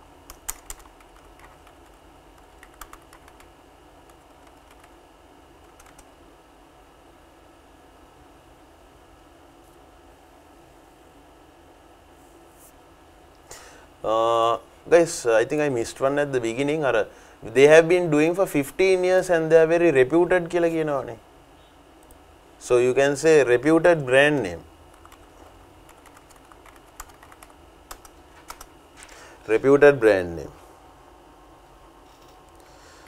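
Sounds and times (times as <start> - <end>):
computer keyboard typing: 0.3 - 5.0, 5.6 - 6.1, 24.9 - 29.2.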